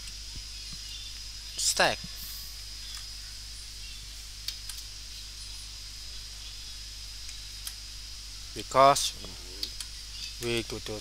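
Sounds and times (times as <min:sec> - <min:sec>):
background hiss: 0:00.0 - 0:11.0
low hum: 0:00.0 - 0:11.0.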